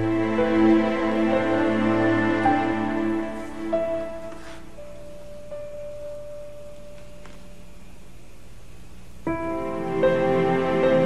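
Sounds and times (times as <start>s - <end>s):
faint low hum: 0.0s - 11.0s.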